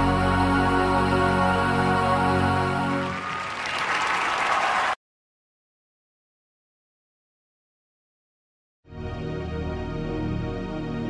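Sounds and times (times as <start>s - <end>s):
music: 0.0s - 3.6s, 8.8s - 11.0s
audience applause: 2.9s - 5.0s.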